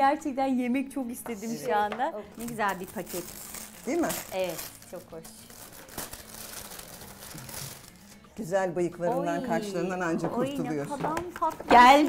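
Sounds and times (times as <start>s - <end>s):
gift wrapping crinkling: 2.3s - 8.2s.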